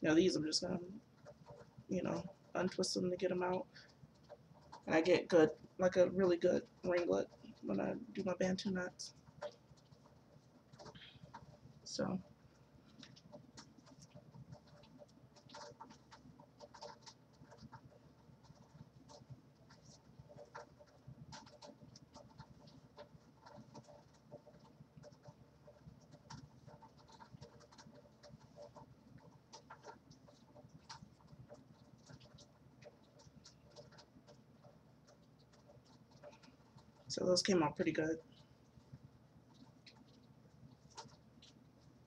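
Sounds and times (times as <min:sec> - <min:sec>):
hair rustling and crackling: 0:00.0 - 0:42.0.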